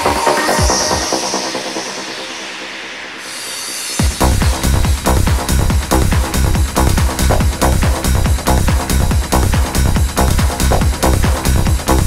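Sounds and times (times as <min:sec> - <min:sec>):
kick drum: 0:04.0 - 0:12.0.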